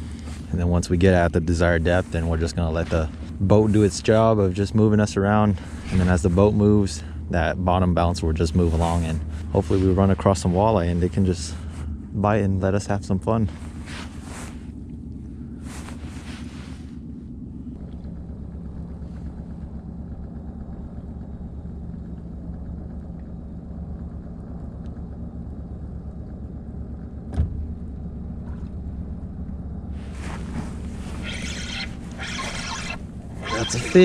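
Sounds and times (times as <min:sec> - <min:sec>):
outboard motor humming: 0:00.0 - 0:34.0
bright rustling: 0:30.0 - 0:34.0.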